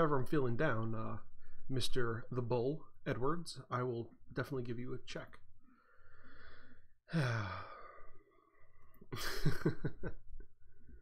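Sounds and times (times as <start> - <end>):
man sighing: 6.4 - 8.2.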